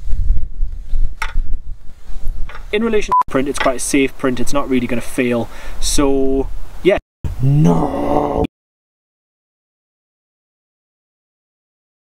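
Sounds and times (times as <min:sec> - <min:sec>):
wind buffeting microphone: 0:00.0 - 0:03.0.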